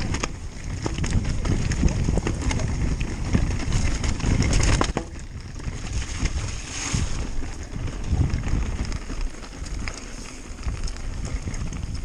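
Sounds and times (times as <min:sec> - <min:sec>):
bike tyres rumbling over stones: 0:00.0 - 0:12.0
stones and bike clattering: 0:00.0 - 0:12.0.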